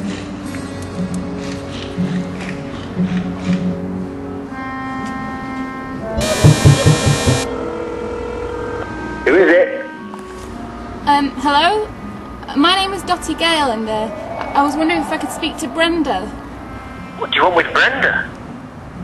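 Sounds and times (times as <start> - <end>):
background music: 0.0 - 17.3
intercom buzzer: 6.0 - 10.1.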